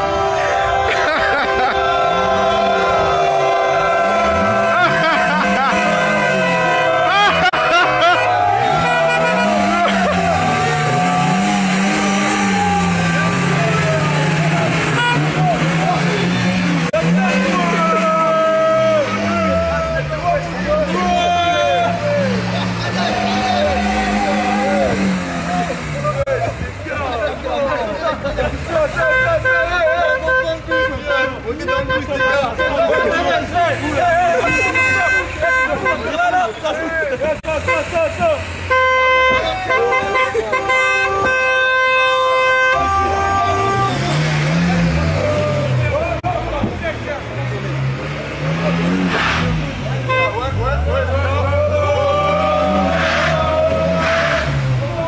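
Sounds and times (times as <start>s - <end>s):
people shouting: 0.0s - 16.2s, 17.0s - 25.8s, 39.2s - 46.1s, 50.8s - 55.0s
people yelling: 0.0s - 55.0s
car engine running: 1.1s - 29.6s.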